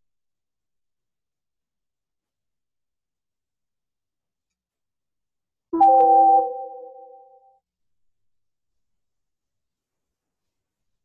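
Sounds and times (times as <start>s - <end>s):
electronic notification chime: 5.8s - 7.4s.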